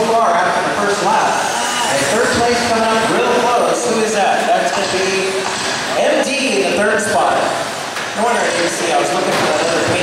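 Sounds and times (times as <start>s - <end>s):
man talking in echoing hall: 0.0s - 10.0s
electric rc trucks running: 1.3s - 3.5s.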